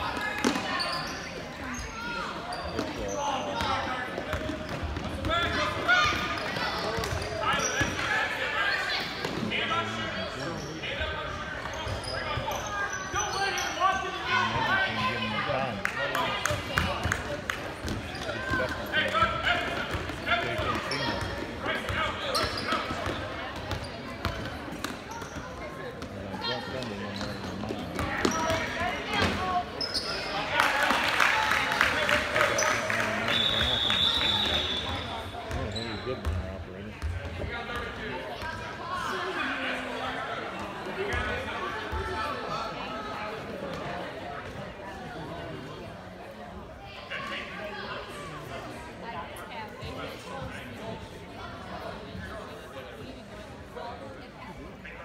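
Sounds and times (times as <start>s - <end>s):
spectators talking and calling out: 0.0s - 55.0s
sneakers squeaking: 0.1s - 14.3s, 17.8s - 30.5s, 32.4s - 38.6s.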